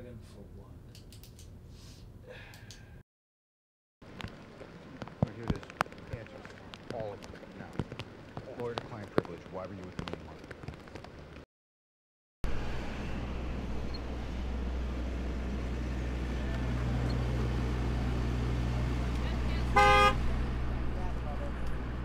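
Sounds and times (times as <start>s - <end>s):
truck engine running: 12.5s - 22.0s
horn toot: 19.7s - 20.3s.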